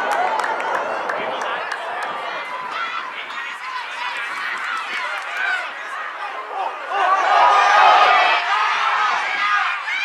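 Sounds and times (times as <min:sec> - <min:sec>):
people calling and shouting: 0:00.0 - 0:10.0.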